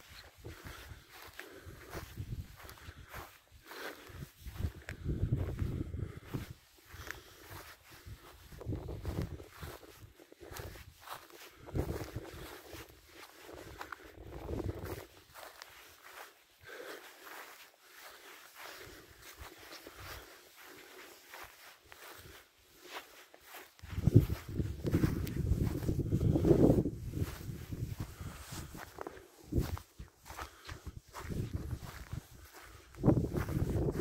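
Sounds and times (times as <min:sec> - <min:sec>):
footsteps on stony ground: 0:00.0 - 0:34.0
wind buffeting microphone: 0:00.4 - 0:03.2, 0:04.2 - 0:06.6, 0:07.5 - 0:15.4, 0:23.8 - 0:34.0.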